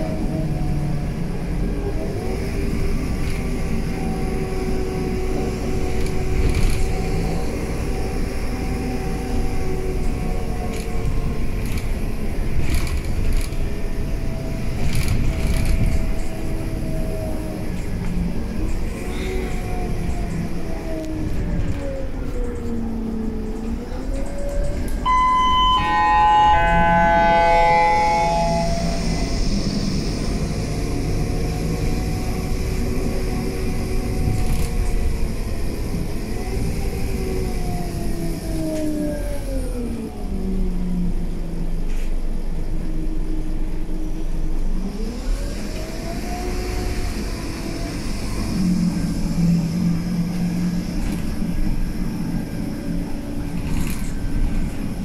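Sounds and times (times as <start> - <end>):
bus engine and gearbox running: 0.0 - 25.4, 29.0 - 55.0
electronic chime: 25.1 - 29.8.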